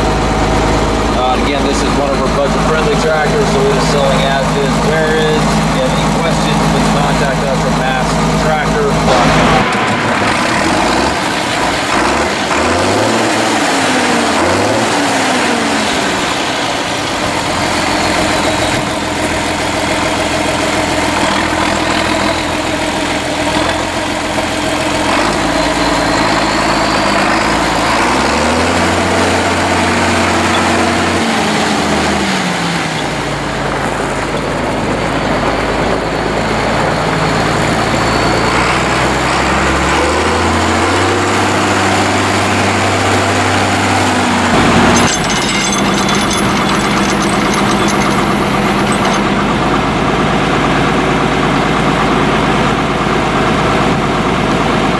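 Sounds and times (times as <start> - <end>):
tractor diesel engine running: 0.0 - 54.9.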